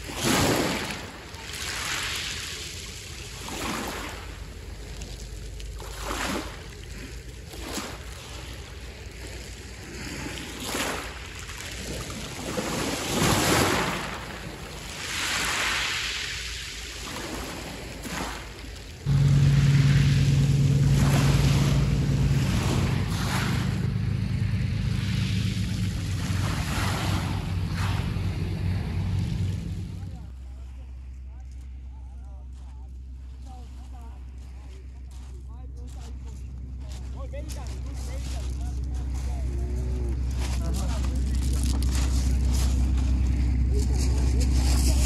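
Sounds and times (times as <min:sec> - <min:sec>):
boat motor droning: 0:00.0 - 0:15.6, 0:16.3 - 0:45.0
small waves on pebble shore: 0:00.0 - 0:28.6.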